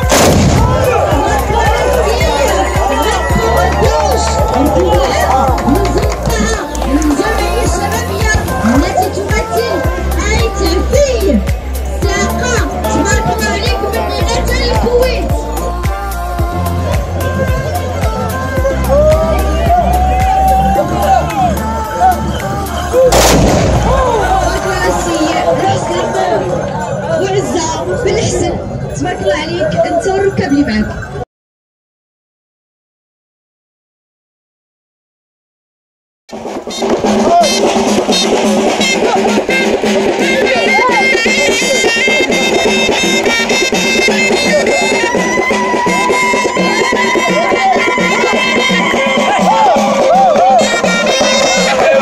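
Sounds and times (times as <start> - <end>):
muskets firing in volley: 0.0 - 1.1, 23.1 - 24.3
background music: 0.0 - 31.2, 36.3 - 52.0.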